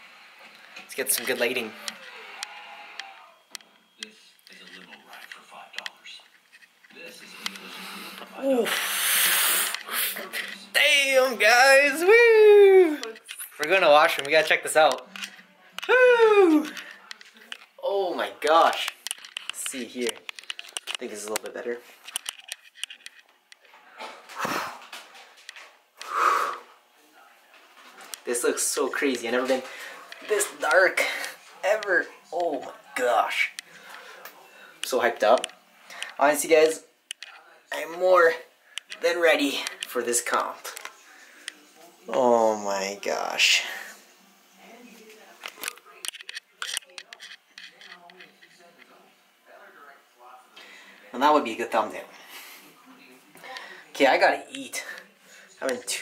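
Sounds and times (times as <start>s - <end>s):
faint voices: 0.0s - 36.3s, 36.9s - 56.0s.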